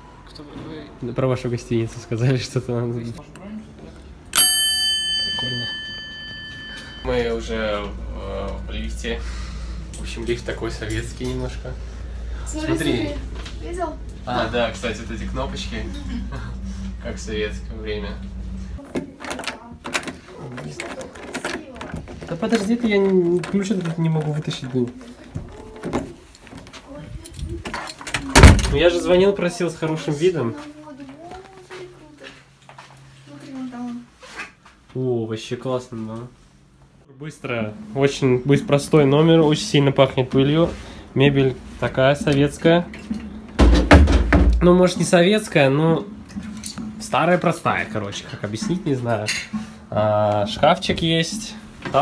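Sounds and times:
service bell ringing: 4.3 - 9.0.

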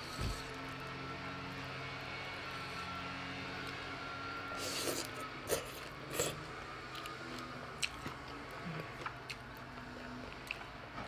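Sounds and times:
slurping noodles: 4.5 - 10.6.

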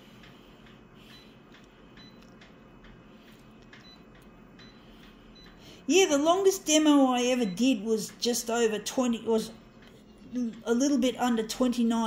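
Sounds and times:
low room hum: 0.0 - 12.0
touchscreen taps and beeps: 4.6 - 5.6.

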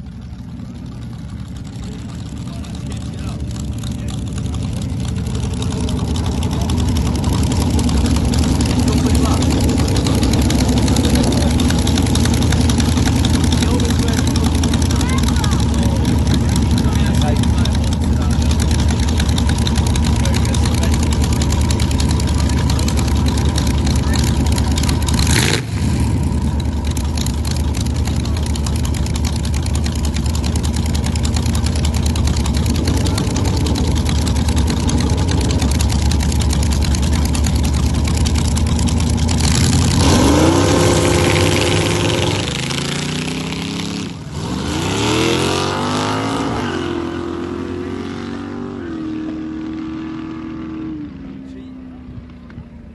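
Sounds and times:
dragster engine idling: 0.0 - 50.2
dragster engine revving and launching: 1.8 - 51.2.

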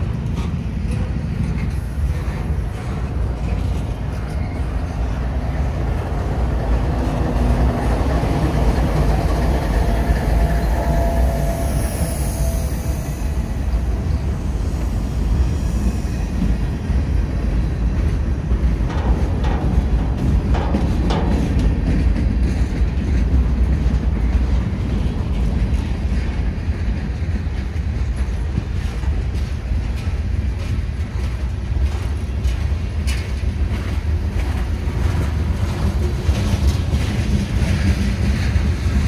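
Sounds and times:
diesel locomotive passing: 0.0 - 39.0
train wheels rumbling on rails: 0.0 - 39.0
high-pitched wheel squeal: 9.3 - 13.8.

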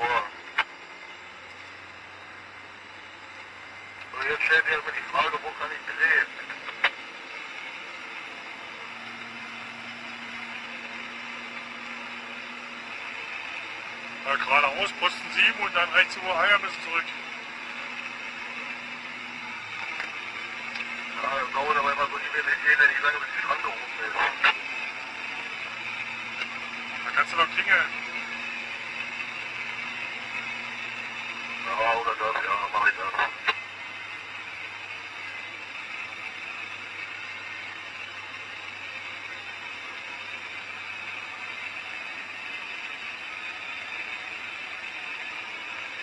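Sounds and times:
vehicle cab engine hum: 0.0 - 46.0.

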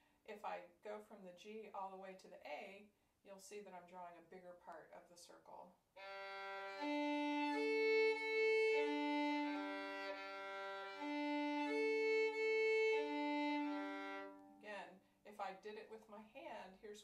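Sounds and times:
violin bowed across strings: 6.0 - 14.6.

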